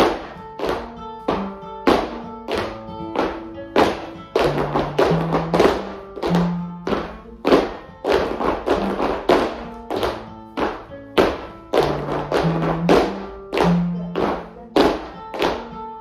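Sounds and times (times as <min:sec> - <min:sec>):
shoes tapping wooden floor: 0:00.0 - 0:15.8.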